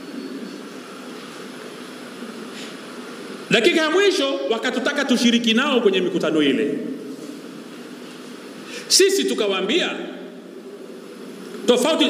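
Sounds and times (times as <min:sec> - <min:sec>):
constant hum and hiss: 0:00.0 - 0:12.0.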